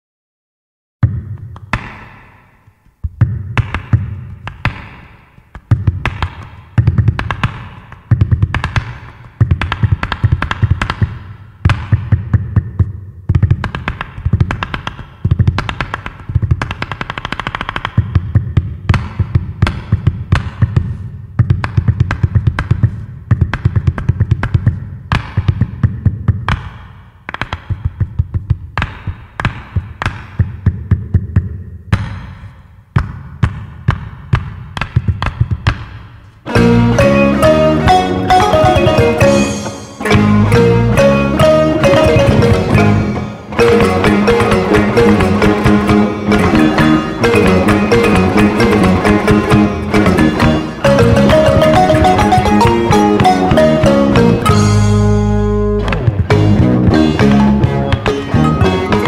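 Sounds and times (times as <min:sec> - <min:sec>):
low bass: 0:36.5 - 0:59.0
rapid drum strikes: 0:36.6 - 0:55.2.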